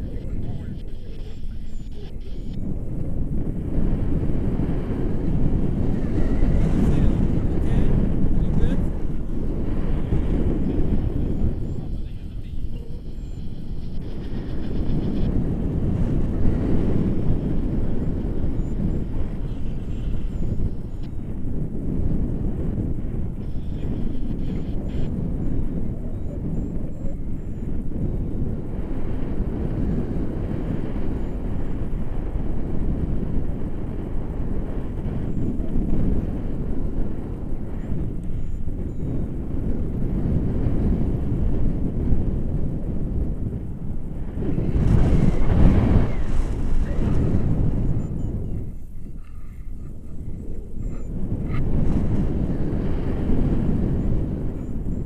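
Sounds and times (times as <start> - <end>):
wind rushing over microphone: 0.0 - 55.0.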